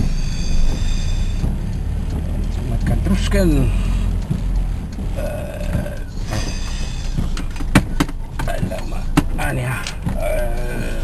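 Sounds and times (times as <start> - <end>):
car engine and road noise: 0.0 - 11.0.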